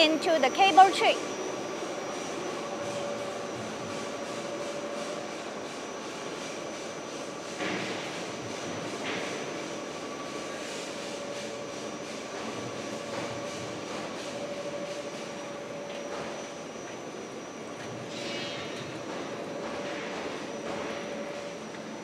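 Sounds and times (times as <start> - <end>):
roll forming machine humming: 0.0 - 22.0.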